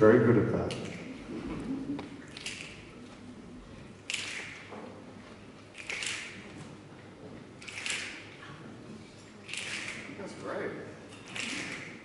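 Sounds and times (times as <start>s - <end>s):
audience snapping fingers: 0.6s - 3.0s, 4.0s - 4.7s, 5.7s - 6.6s, 7.6s - 8.4s, 9.4s - 10.2s, 11.2s - 12.0s.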